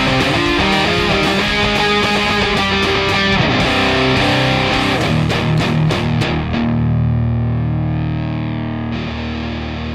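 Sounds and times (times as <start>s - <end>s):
distorted electric guitar chord: 0.0s - 9.9s.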